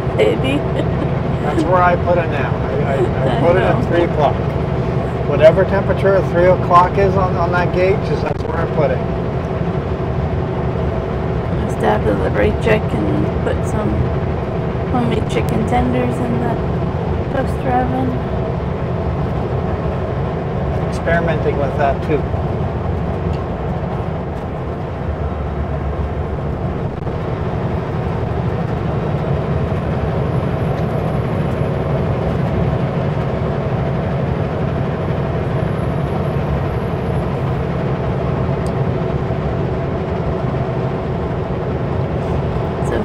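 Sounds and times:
truck engine and road noise: 0:00.0 - 0:43.0.

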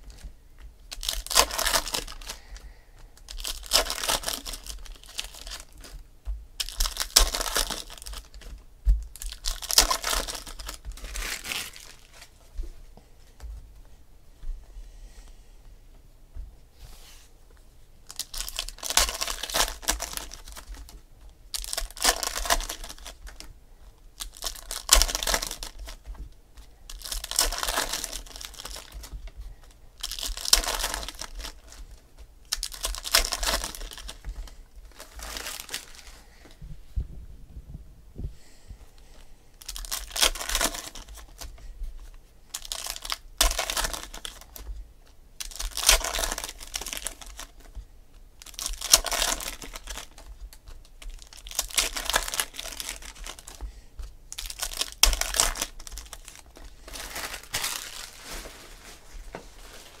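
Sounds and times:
card wrappers torn and crinkled: 0:00.9 - 0:02.6, 0:03.2 - 0:06.0, 0:06.6 - 0:08.5, 0:09.1 - 0:12.3, 0:18.1 - 0:23.5, 0:24.2 - 0:36.1, 0:39.6 - 0:41.5, 0:42.5 - 0:44.7, 0:45.4 - 0:47.8, 0:48.4 - 0:53.7, 0:54.3 - 0:59.0.

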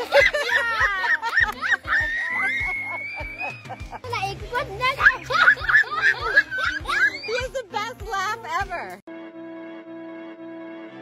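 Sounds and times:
children laughing: 0:00.0 - 0:07.6
background music with beat: 0:00.0 - 0:09.0.

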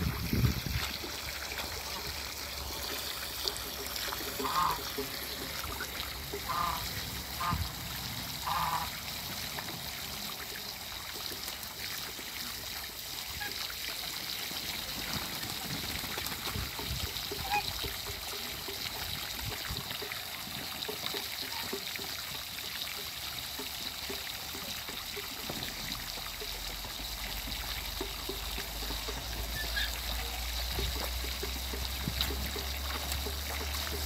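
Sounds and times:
ducks dabbling and splashing: 0:00.0 - 0:34.0
water pouring from hose: 0:00.0 - 0:34.0.

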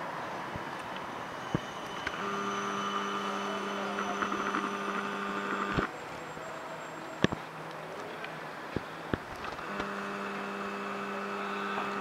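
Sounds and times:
electric tram humming: 0:00.0 - 0:12.0
street noise: 0:00.0 - 0:12.0.

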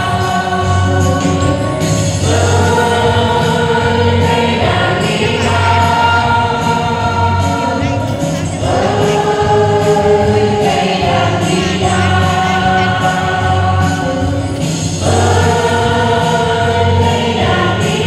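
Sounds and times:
group singing through microphones: 0:00.0 - 0:18.0.

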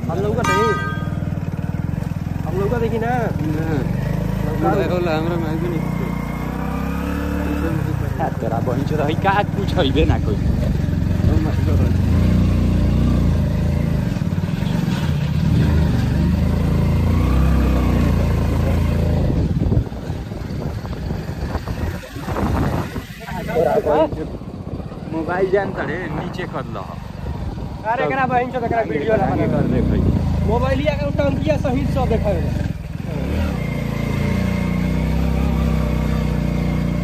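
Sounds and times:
motorcycle engine running: 0:00.0 - 0:37.0.

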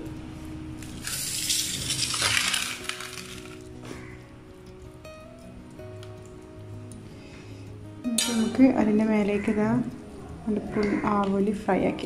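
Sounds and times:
spoon scraping on leaf: 0:00.8 - 0:04.1.

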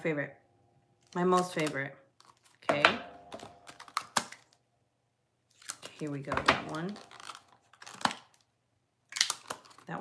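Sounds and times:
packaging rustling and clicking: 0:01.0 - 0:04.6, 0:05.5 - 0:08.5, 0:09.1 - 0:09.9.

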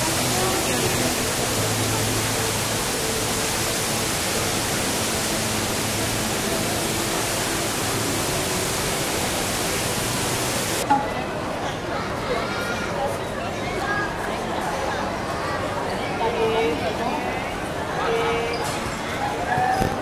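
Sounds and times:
indoor waterfall hiss: 0:00.0 - 0:10.9
crowd chatter: 0:00.0 - 0:20.0.

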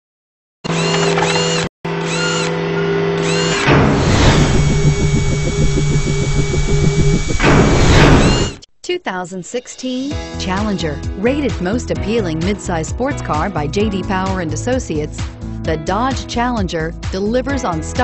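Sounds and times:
rising and falling electronic chirps: 0:00.8 - 0:08.6
fast pulsing buzz: 0:03.2 - 0:08.6
whoosh: 0:03.6 - 0:08.6.

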